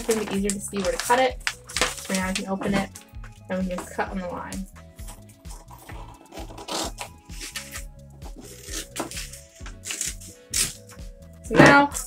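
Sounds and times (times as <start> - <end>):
scissors snipping paper: 0.0 - 2.4, 5.6 - 11.0
background music: 0.0 - 12.0.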